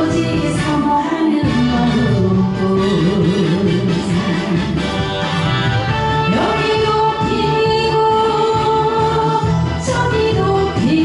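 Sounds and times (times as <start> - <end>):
woman singing: 0.0 - 4.8, 6.2 - 11.0
backing track: 0.0 - 11.0.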